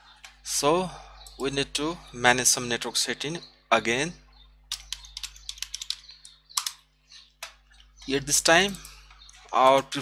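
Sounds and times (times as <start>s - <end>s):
typing on computer keyboard: 4.7s - 6.8s.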